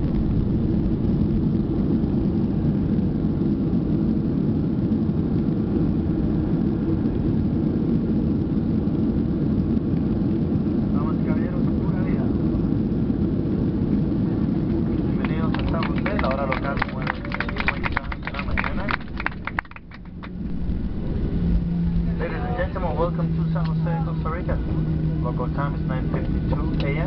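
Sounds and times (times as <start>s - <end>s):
aircraft cabin roar: 0.0s - 27.0s.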